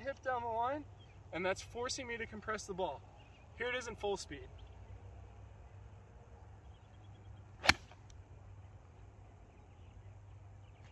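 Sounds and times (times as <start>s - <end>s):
golf club striking ball: 7.6s - 8.1s.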